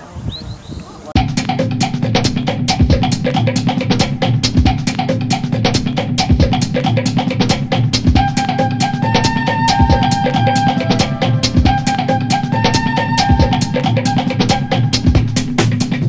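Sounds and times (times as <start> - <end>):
drum-kit beat: 1.2 - 16.0
held melody line: 1.2 - 16.0.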